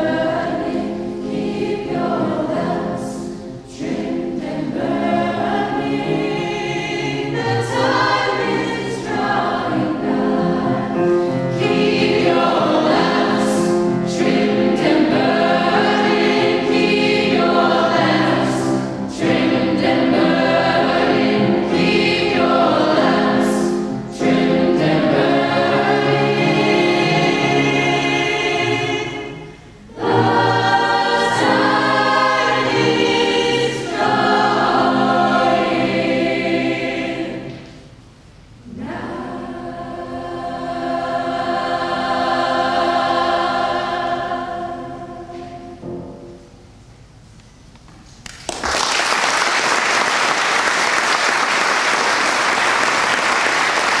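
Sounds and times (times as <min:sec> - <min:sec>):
choir singing: 0:00.0 - 0:38.0, 0:38.6 - 0:46.1.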